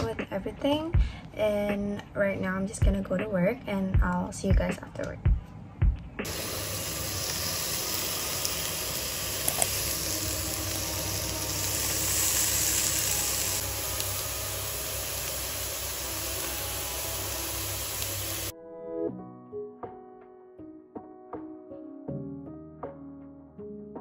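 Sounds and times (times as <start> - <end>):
piano music: 6.2 - 24.0
chicken sizzling in a frying pan: 6.3 - 18.5.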